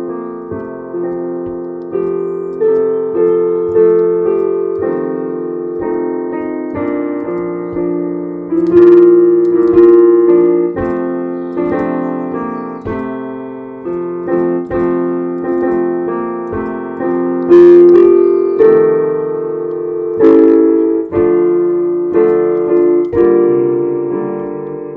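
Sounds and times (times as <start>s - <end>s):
slow piano chords: 0.0s - 24.9s.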